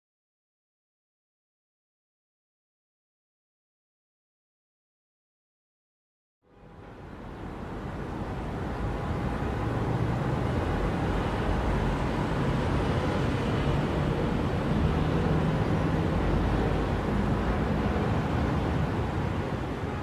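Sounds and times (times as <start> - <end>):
road traffic rumble: 6.5 - 20.0.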